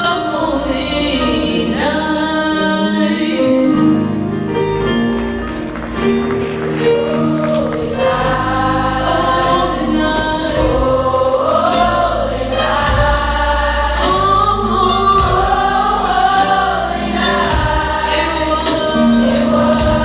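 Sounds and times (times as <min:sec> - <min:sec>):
choir singing: 0:06.7 - 0:20.0.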